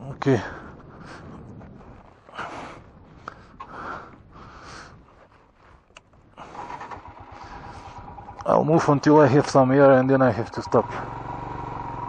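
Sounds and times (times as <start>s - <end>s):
faint low rumble: 0.0s - 10.3s.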